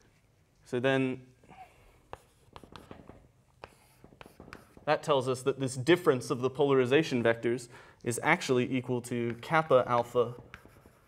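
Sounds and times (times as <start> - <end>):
chalk writing on blackboard: 2.0 - 5.2, 9.1 - 11.0.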